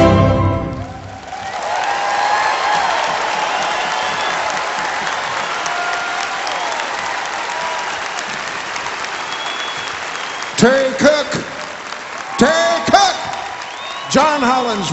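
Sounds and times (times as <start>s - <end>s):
audience applauding: 0.6s - 14.9s.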